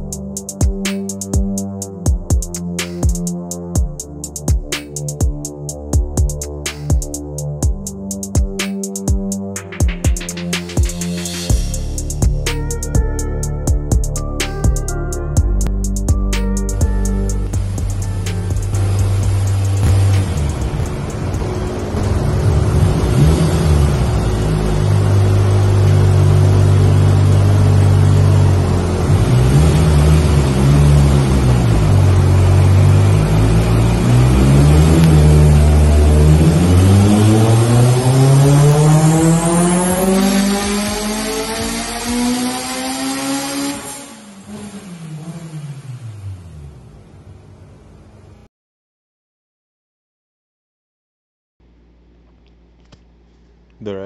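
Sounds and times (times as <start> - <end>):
car engine revving on dyno: 17.4 - 47.9.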